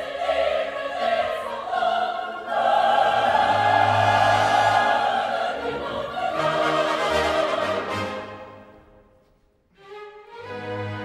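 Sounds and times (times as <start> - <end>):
women's opera chorus singing: 0.0 - 8.4
orchestra: 0.0 - 11.0.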